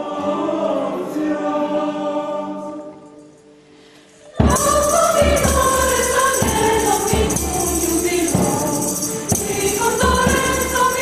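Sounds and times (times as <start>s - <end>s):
mixed choir singing: 0.0s - 3.2s, 4.2s - 11.0s
percussive beat: 4.4s - 11.0s
tambourine: 4.4s - 11.0s.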